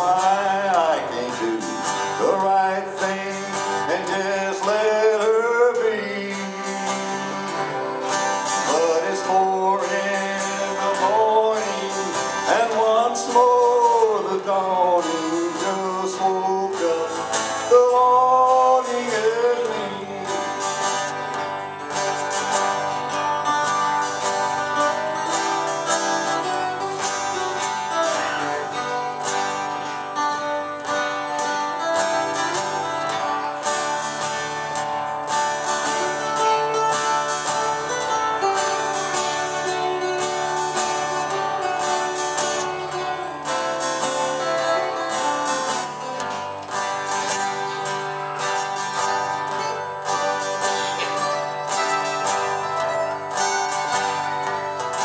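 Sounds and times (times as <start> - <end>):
acoustic guitars playing country: 0.0 - 55.0.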